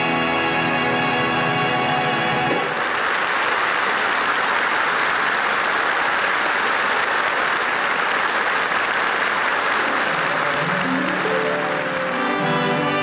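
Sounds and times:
audience applauding: 0:01.4 - 0:13.0.

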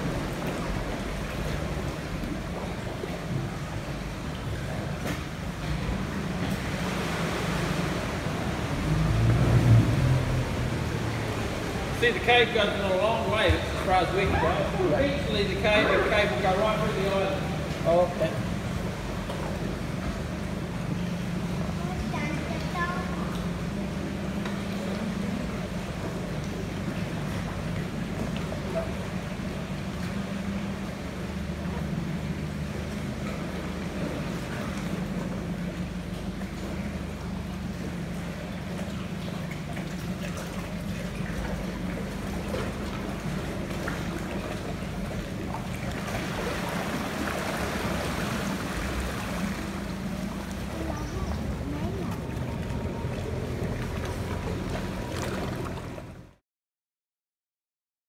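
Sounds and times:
outboard motor idling: 0:00.0 - 0:56.4
water and wind rushing: 0:00.0 - 0:56.4.

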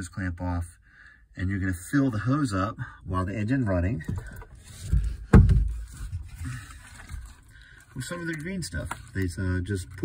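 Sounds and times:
faint knocks and rustles: 0:04.0 - 0:09.2
dull thump: 0:04.1 - 0:06.2.

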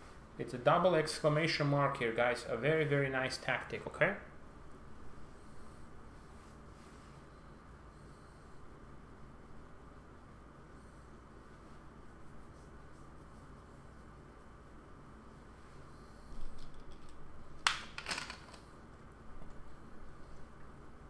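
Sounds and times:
faint steady hum: 0:00.0 - 0:21.0
soft rustling: 0:05.1 - 0:07.6.

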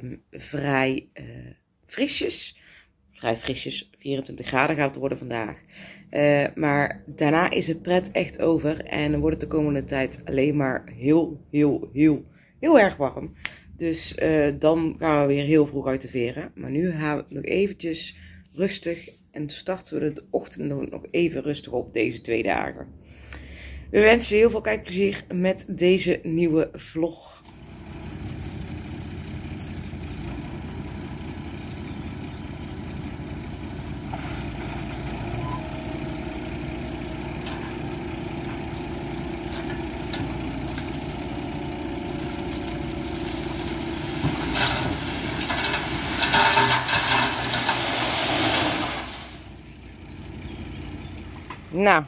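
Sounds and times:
truck engine running: 0:27.4 - 0:52.0
gravel pouring and sliding: 0:34.1 - 0:49.7.

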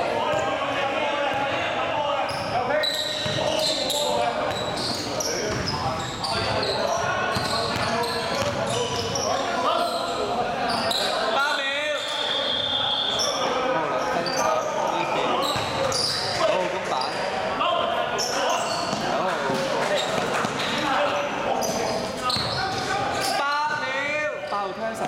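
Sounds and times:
sneakers squeaking: 0:00.0 - 0:17.3, 0:18.1 - 0:25.0
players calling out: 0:00.0 - 0:25.0
basketball bouncing on court: 0:03.2 - 0:03.6, 0:04.4 - 0:05.8, 0:06.4 - 0:09.2, 0:15.5 - 0:16.0, 0:18.8 - 0:19.2, 0:22.3 - 0:22.9.

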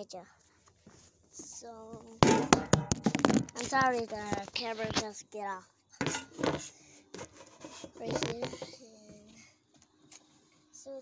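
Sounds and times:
phone handling rubbing and scraping: 0:02.8 - 0:05.0, 0:06.0 - 0:08.8.

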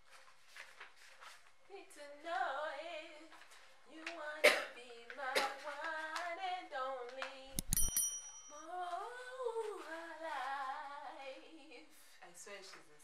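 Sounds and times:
woman singing unaccompanied: 0:01.7 - 0:07.6, 0:08.5 - 0:13.0
brief high clink: 0:07.6 - 0:08.6.

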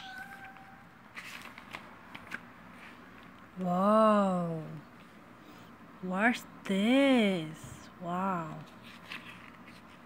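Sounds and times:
book pages rustling: 0:00.2 - 0:03.5, 0:08.6 - 0:10.0.

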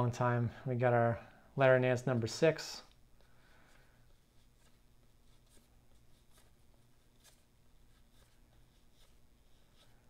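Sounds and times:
cardboard cards sliding: 0:04.1 - 0:10.0.

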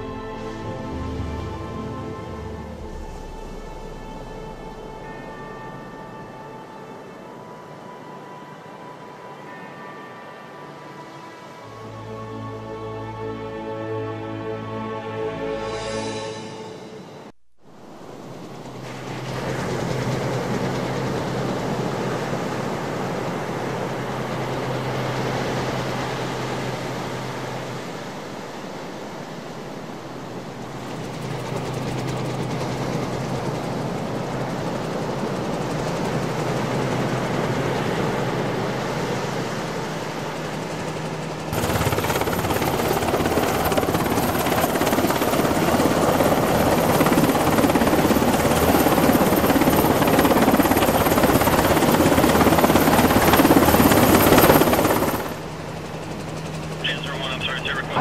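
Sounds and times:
helicopter engine and rotor drone: 0:17.9 - 0:58.0.

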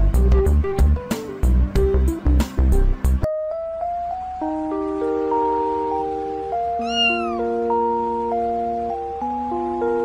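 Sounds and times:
music of held chords: 0:00.0 - 0:10.0
kitten meowing: 0:06.8 - 0:07.5.

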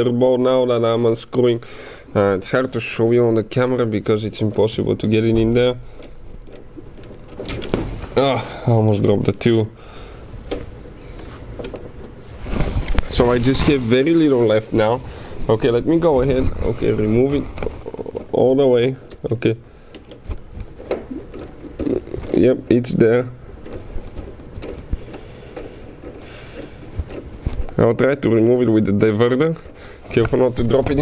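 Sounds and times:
tool scraping: 0:10.4 - 0:18.5.

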